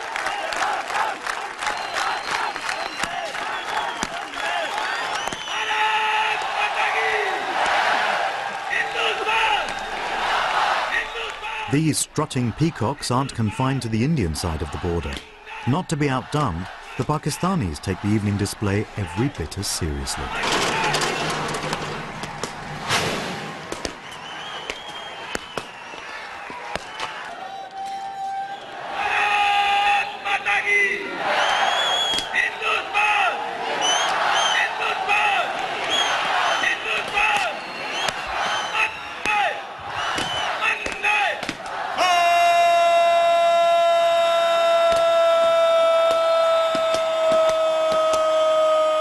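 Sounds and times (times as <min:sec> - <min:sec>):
soldier's long parade shout: 0:00.0 - 0:09.9, 0:25.8 - 0:37.6, 0:38.3 - 0:49.0.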